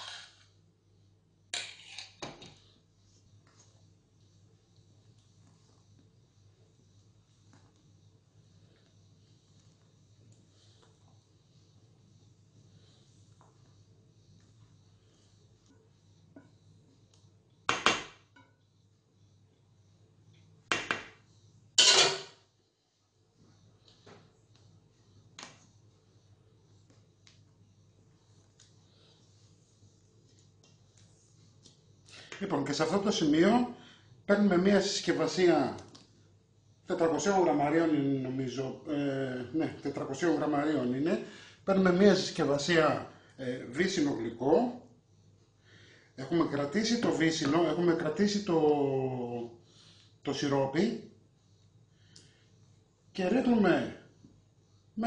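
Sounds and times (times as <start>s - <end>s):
metal bowl clanking and scraping: 0.0s - 0.4s, 1.6s - 2.2s, 21.8s - 22.3s
metal utensils clattering on pot: 21.8s - 22.3s.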